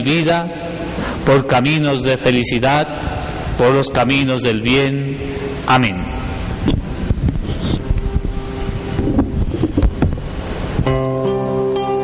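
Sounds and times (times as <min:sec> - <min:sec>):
microphone rumble: 0:05.1 - 0:11.0.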